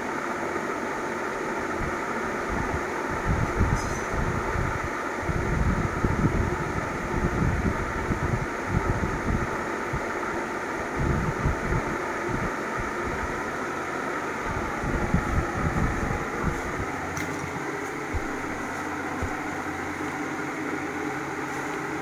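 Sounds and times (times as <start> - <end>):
steady background hum: 0.0 - 22.0
wind buffeting microphone: 2.5 - 10.0, 10.9 - 13.4, 14.4 - 19.9.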